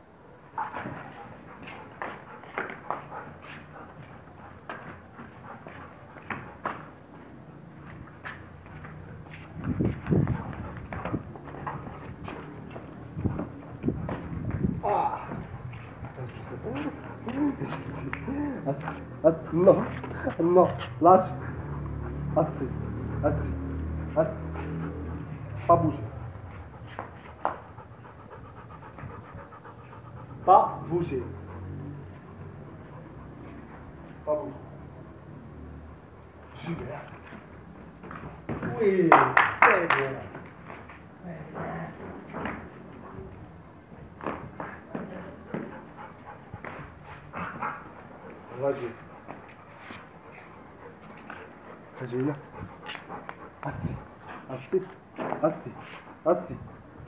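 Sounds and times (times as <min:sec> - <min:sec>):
dog panting: 0:00.1 - 0:57.0
low dog vocal sound: 0:08.0 - 0:38.8, 0:40.2 - 0:57.0.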